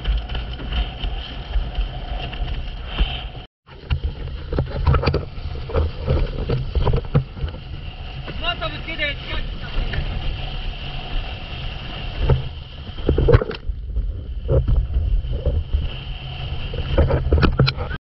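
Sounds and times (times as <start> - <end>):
water splashing: 0.0 - 18.0
wind buffeting microphone: 0.0 - 18.0.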